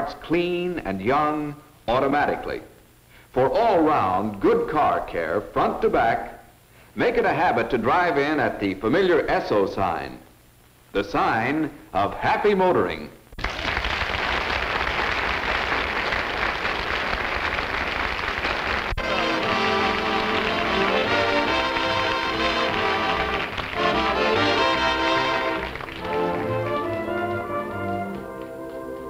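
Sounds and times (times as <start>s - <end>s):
studio audience applause: 13.4s - 28.9s
orchestra with brass playing: 19.0s - 29.0s.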